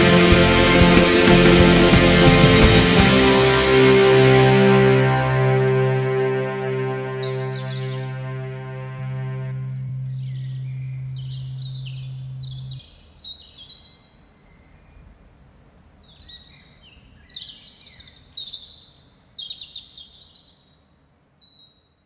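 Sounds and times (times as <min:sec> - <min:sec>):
held low note: 0:00.0 - 0:12.8
birds chirping and singing: 0:09.6 - 0:13.8.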